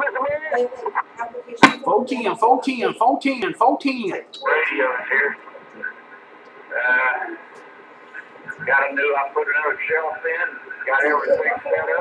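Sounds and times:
radio static hiss: 0.0 - 12.0.

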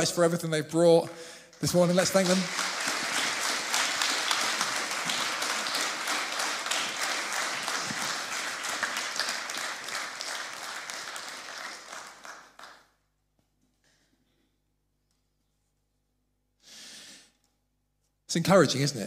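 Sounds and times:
congregation applauding: 1.5 - 13.0.

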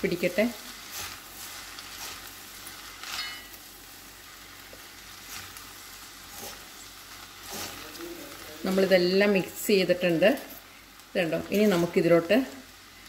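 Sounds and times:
noodles sizzling in a pan: 0.0 - 13.0
utensil striking metal pan: 3.0 - 3.6.

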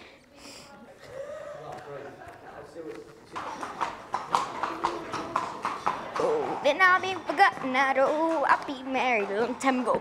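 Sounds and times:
horse hooves clip-clopping: 1.7 - 10.0.

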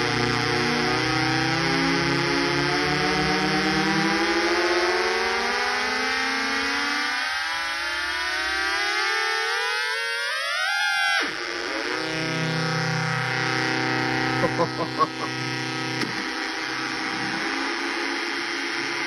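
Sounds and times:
synth drone chord gliding: 0.0 - 9.7, 11.2 - 19.0.

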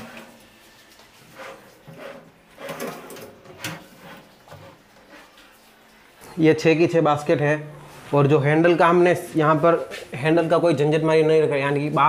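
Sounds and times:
drawers sliding on metal runners: 1.4 - 4.8.

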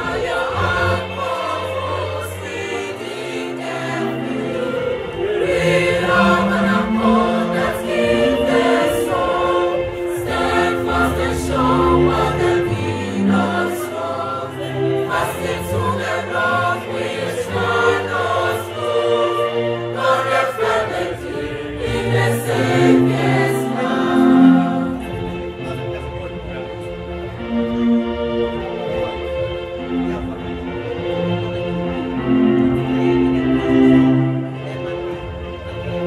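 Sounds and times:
mixed choir singing: 0.0 - 25.6.

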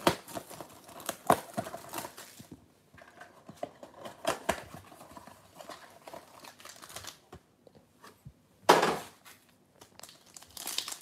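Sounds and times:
crinkling of wrapped packs: 0.0 - 2.5, 4.9 - 7.3, 9.4 - 11.0.

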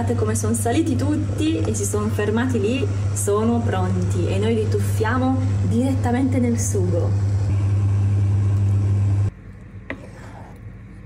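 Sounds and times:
kitchen appliance humming and hissing: 0.0 - 10.6.

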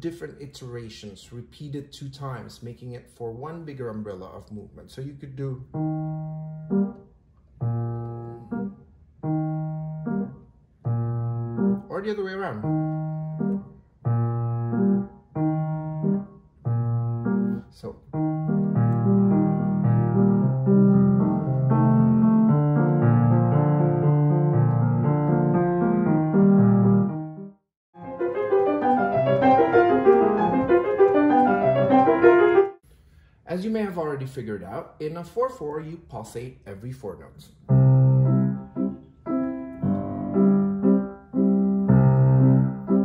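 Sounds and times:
grand piano playing: 5.4 - 32.8, 37.7 - 43.0.

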